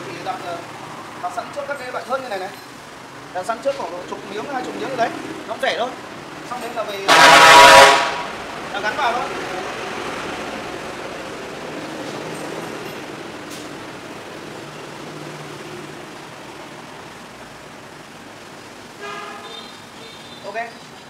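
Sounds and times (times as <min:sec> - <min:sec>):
road traffic rumble: 0:00.0 - 0:21.0.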